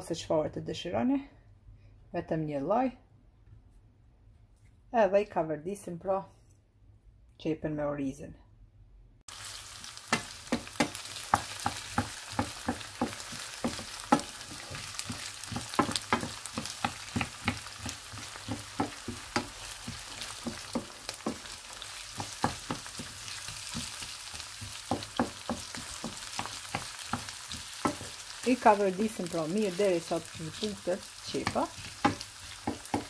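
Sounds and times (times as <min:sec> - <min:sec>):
rice and onion sizzling in oil: 0:09.3 - 0:33.0
wooden spoon scraping a pan: 0:10.8 - 0:33.0.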